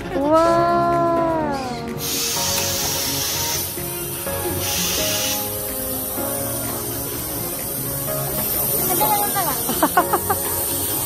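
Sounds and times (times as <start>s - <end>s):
background music: 0.0s - 11.0s
short bursts of hiss: 2.0s - 11.0s.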